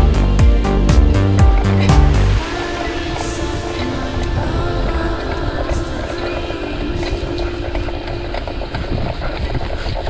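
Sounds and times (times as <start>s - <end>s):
background music: 0.0s - 10.0s
wind rumbling on microphone: 1.1s - 10.0s
bike rattling over bumpy ground: 7.6s - 10.0s.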